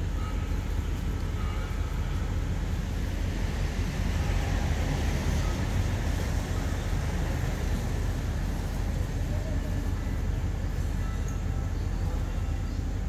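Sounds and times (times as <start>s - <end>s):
diesel train idling rumble: 0.0s - 13.0s.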